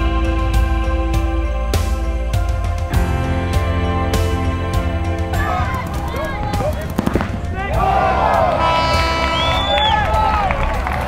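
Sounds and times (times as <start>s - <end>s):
background music: 0.0s - 11.0s
people shouting: 5.3s - 10.7s
paintball markers firing: 5.9s - 7.5s.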